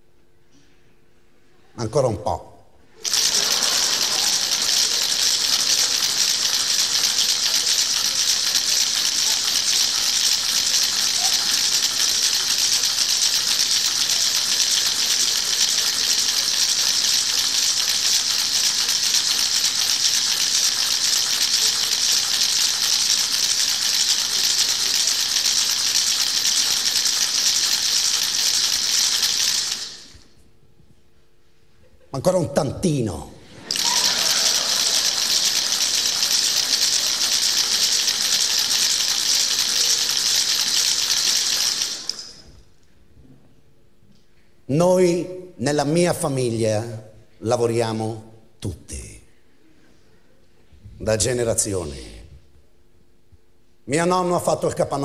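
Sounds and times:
audience applauding: 0:03.0 - 0:30.0, 0:33.7 - 0:42.4.

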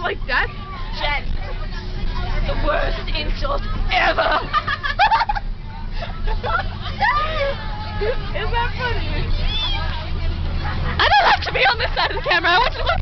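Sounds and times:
babble of voices: 0:00.0 - 0:13.0
bus engine rumble: 0:00.0 - 0:13.0
girls laughing: 0:03.9 - 0:08.5, 0:09.4 - 0:13.0.

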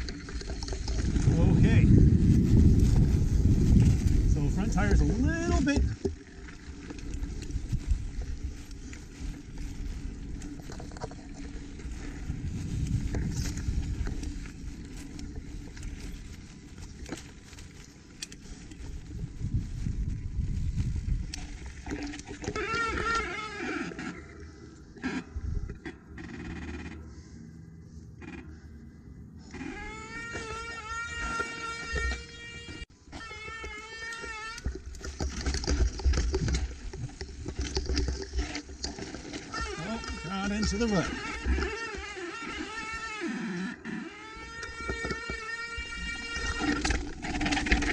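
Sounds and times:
bike tyre and wind rumble: 0:00.0 - 0:47.9.

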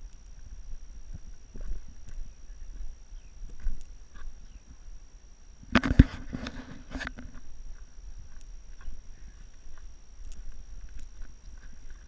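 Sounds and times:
faint high whine: 0:00.0 - 0:12.0
wind rumbling on microphone: 0:00.0 - 0:12.0
faint clicks: 0:05.7 - 0:12.0.

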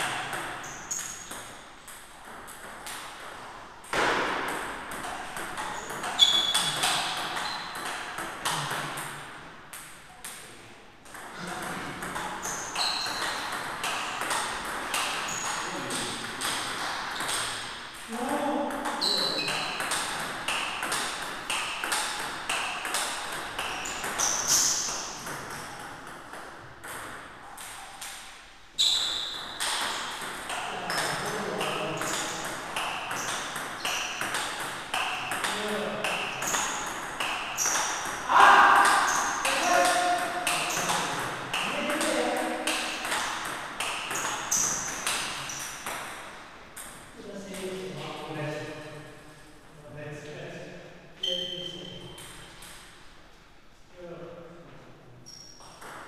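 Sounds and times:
ping pong ball clicking: 0:12.0 - 0:17.6, 0:18.7 - 0:28.2, 0:29.3 - 0:46.2.

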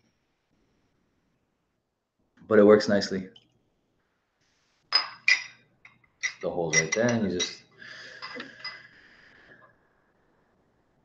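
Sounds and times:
glass dropper clinking on glass: 0:04.9 - 0:08.9.

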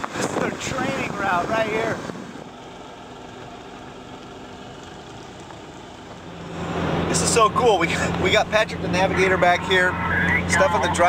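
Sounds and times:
car engine: 0:00.0 - 0:11.0
road noise: 0:00.0 - 0:11.0.

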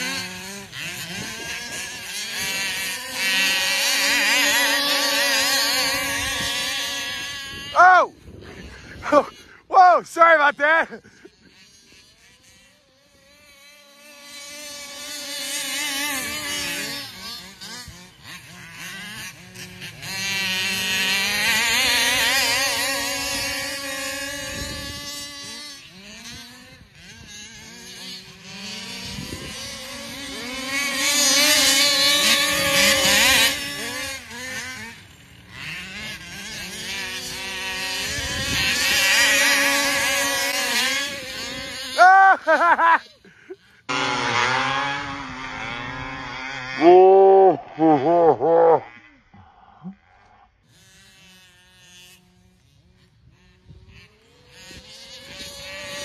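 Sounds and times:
small two-stroke engine revving: 0:00.0 - 0:56.0.

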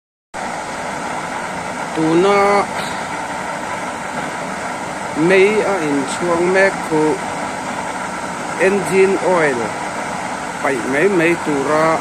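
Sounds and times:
oil burner flame rushing: 0:00.4 - 0:12.0
person speaking: 0:01.9 - 0:03.3, 0:05.1 - 0:07.3, 0:08.5 - 0:09.8, 0:10.6 - 0:12.0.

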